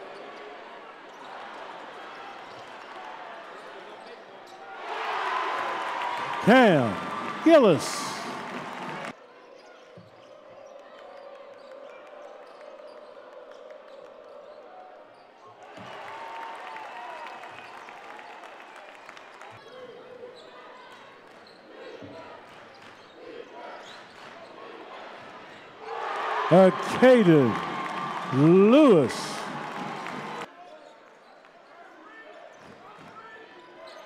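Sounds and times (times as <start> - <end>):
hollow arena background noise: 0.0 - 34.0
loud voice: 6.4 - 8.4, 26.5 - 29.5.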